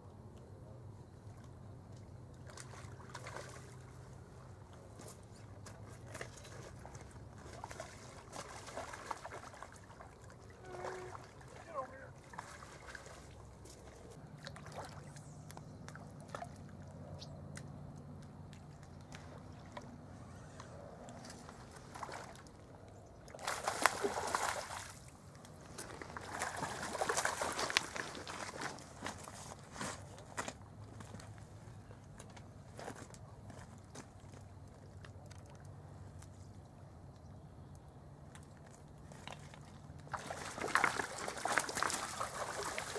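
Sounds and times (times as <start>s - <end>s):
water splashing and sloshing: 1.2s - 31.3s, 32.9s - 36.6s, 38.3s - 42.9s.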